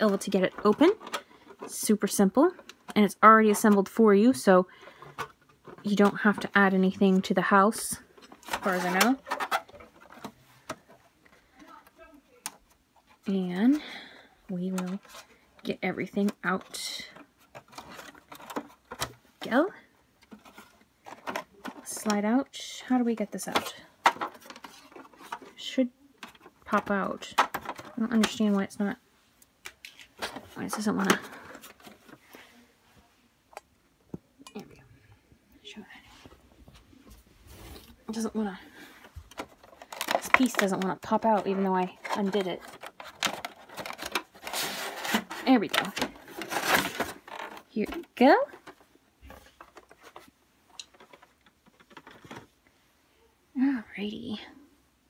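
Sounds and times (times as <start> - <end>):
clicks handling plastic toy: 39.3 - 48.8, 49.4 - 52.5.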